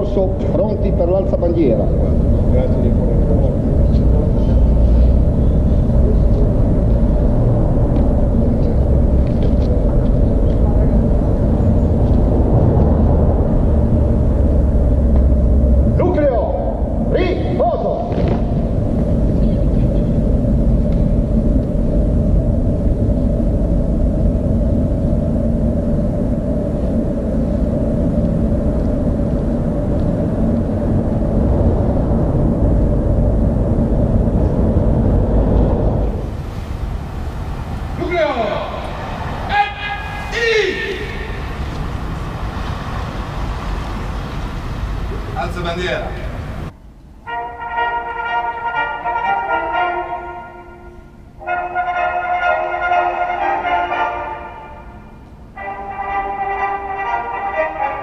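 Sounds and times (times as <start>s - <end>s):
heavy low rumble: 0.0s - 58.0s.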